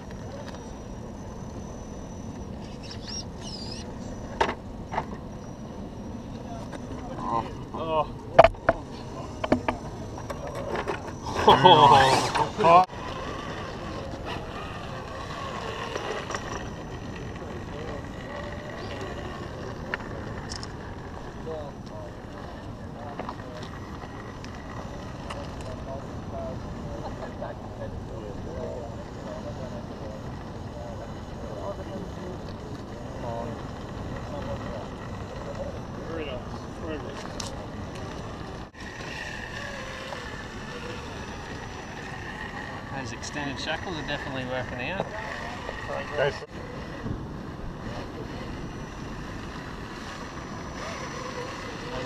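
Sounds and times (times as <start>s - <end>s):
faint voices: 0.0s - 52.0s
low outdoor rumble: 0.0s - 52.0s.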